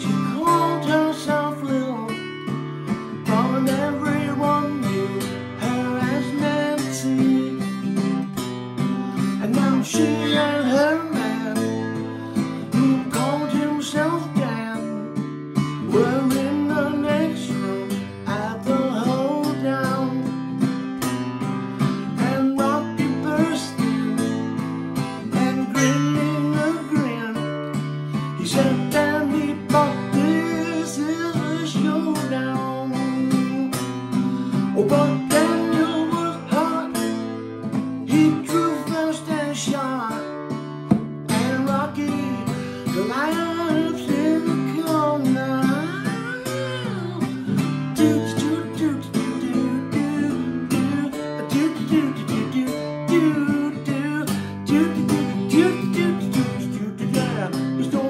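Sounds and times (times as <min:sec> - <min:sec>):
country song on acoustic guitar: 0:00.0 - 0:58.0.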